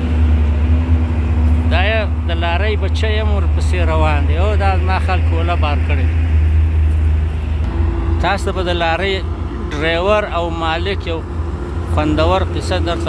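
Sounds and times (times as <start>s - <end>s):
truck diesel engine rumble: 0.0s - 13.0s
man talking: 1.7s - 6.2s, 8.2s - 11.3s, 11.9s - 13.0s.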